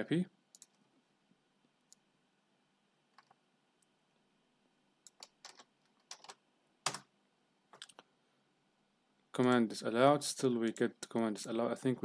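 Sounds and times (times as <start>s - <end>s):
computer keyboard typing: 0.5s - 0.8s, 5.0s - 7.1s.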